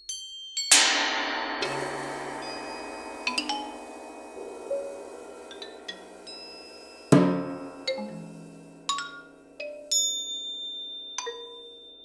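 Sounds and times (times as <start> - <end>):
high ringing metal percussion: 0.0 - 12.0
lower struck metal note: 0.7 - 9.9.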